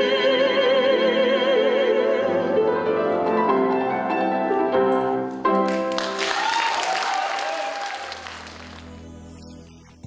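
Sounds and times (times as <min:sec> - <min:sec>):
vocal duet with accompaniment: 0:00.0 - 0:03.1
audience applause: 0:05.7 - 0:09.1.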